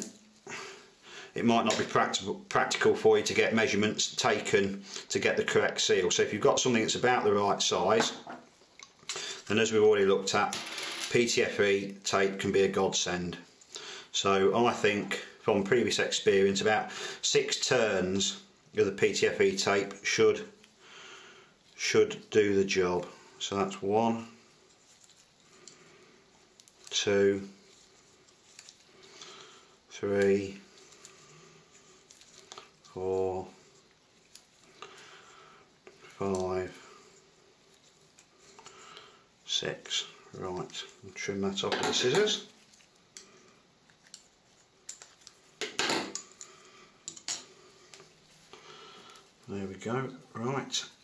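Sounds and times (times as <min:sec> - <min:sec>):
tape being wound rustling: 0:24.5 - 0:29.1, 0:43.8 - 0:45.6.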